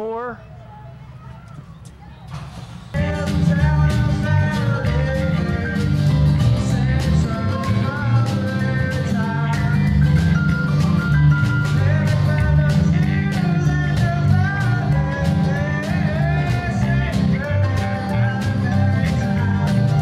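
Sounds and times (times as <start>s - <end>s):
bass-boosted electric bass: 3.0s - 20.0s
gliding melody line: 3.0s - 20.0s.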